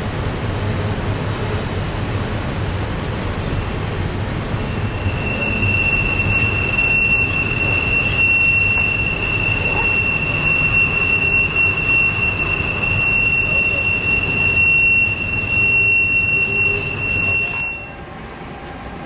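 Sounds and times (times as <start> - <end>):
low rumble of train cars: 0.0 - 19.0
train wheels squealing: 4.6 - 18.1.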